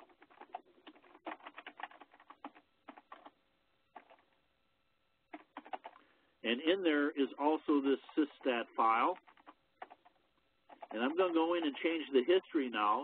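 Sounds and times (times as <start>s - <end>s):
computer keyboard keys clicking: 0.0s - 3.4s, 4.0s - 4.2s, 5.3s - 6.0s, 9.0s - 11.9s.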